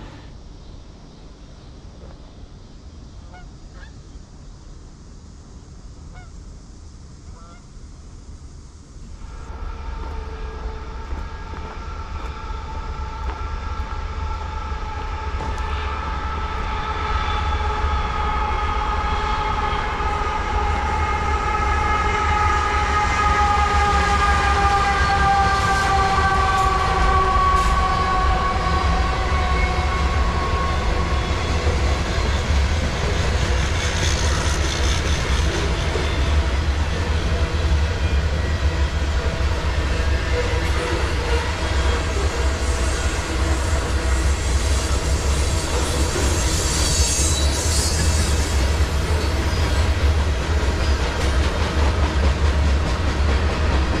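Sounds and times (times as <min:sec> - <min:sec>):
freight train rumble: 0:00.0 - 0:54.0
train horn chord falling in pitch: 0:09.2 - 0:31.4.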